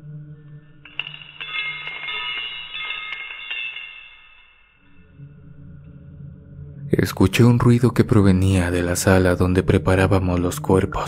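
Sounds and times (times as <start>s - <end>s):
metal instruments clattering on floor: 0.9s - 4.9s.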